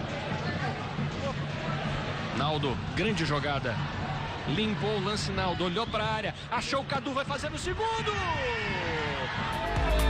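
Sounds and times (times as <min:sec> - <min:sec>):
electronic music with beat: 0:09.4 - 0:10.0.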